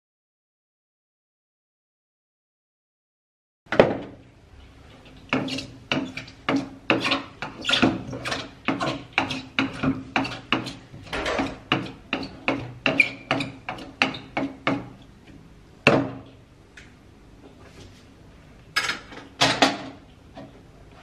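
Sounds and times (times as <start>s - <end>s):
wooden pestle pounding in mortar: 5.3s - 10.8s, 11.4s - 15.0s.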